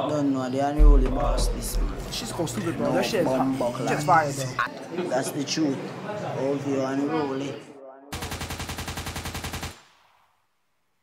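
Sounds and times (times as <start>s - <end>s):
man's voice: 0.8s - 4.6s.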